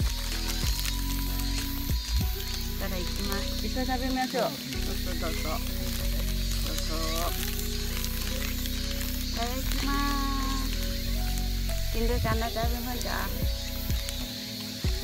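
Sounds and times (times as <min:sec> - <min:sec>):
background music with sustained tones: 0:00.0 - 0:15.0
plastic wrapper crinkling: 0:00.0 - 0:15.0.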